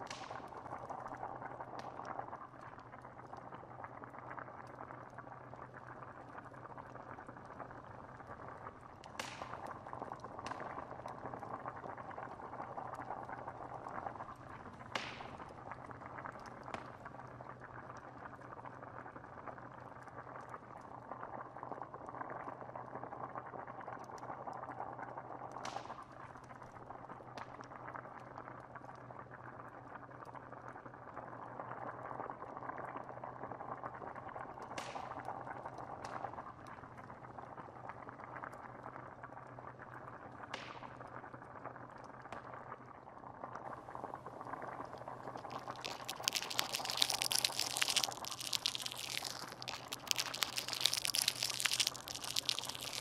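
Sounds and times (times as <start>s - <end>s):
stew bubbling in a pot: 0.0s - 53.0s
wood fire crackling: 44.0s - 53.0s.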